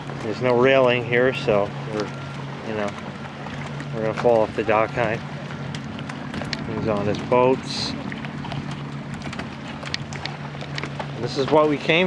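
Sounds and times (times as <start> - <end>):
footsteps on a dock: 0.0 - 12.0
motorboat engine drone: 0.0 - 12.0.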